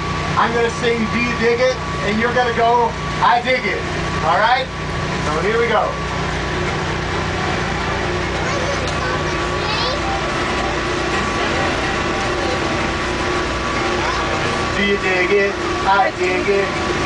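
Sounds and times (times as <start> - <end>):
train car rumble: 0.0 - 17.0
faint passenger voices: 0.1 - 17.0.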